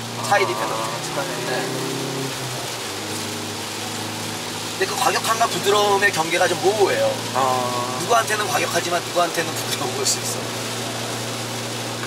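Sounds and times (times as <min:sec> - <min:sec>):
car engine running at low revs: 0:00.0 - 0:12.0
rain and wet road hiss: 0:00.0 - 0:12.0
man speaking: 0:00.2 - 0:02.4, 0:04.8 - 0:10.4.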